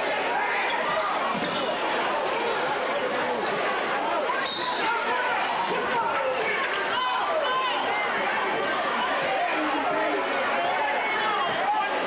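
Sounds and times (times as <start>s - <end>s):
spectators talking: 0.0s - 12.0s.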